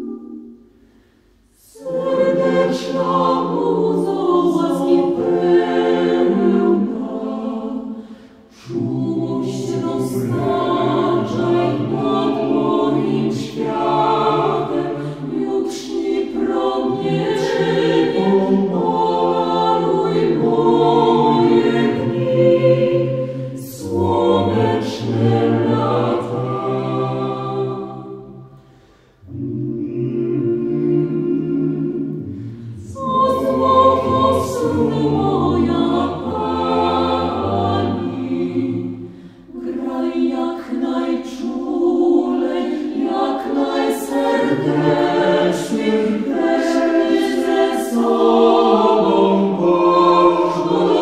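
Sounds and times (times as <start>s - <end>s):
a cappella group singing: 0.0s - 51.0s.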